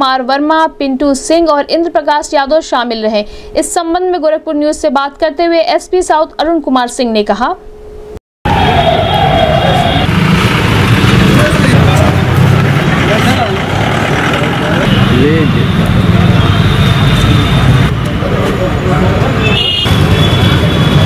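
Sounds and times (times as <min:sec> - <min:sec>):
road noise: 0:08.5 - 0:21.0
vehicle engine running: 0:10.1 - 0:19.2.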